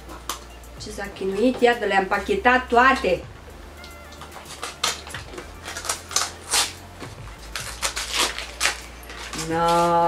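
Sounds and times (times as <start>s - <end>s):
scissors cutting wrapping: 3.8s - 10.0s.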